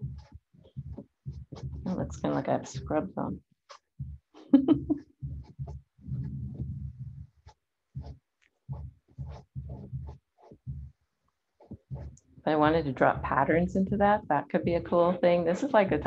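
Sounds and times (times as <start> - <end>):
woman laughing: 4.4 - 5.0
short low muffled sounds: 6.0 - 7.2.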